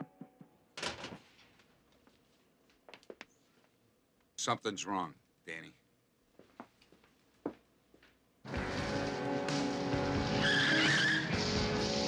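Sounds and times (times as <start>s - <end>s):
background music with held notes: 8.5s - 12.0s
car tyres squealing: 10.3s - 11.4s.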